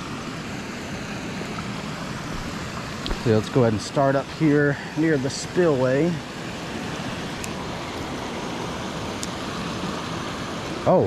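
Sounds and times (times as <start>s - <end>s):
creek water rushing over rocks: 0.0s - 11.0s.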